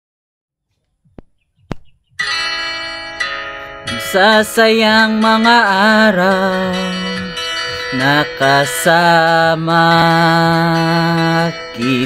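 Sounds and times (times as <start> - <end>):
sustained instrumental chord: 2.2 - 12.0.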